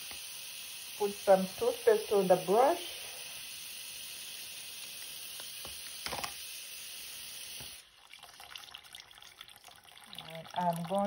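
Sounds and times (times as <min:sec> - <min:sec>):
faucet water splashing: 0:00.0 - 0:11.0.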